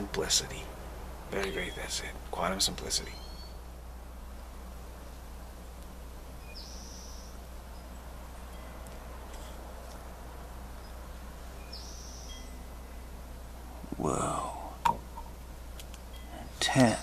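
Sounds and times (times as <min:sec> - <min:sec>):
low hiss and hum: 0:00.0 - 0:17.0.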